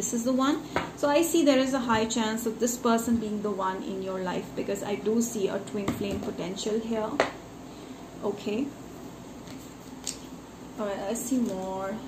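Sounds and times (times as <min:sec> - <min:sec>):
woman speaking: 0:00.0 - 0:07.2, 0:08.2 - 0:08.8, 0:10.8 - 0:12.0.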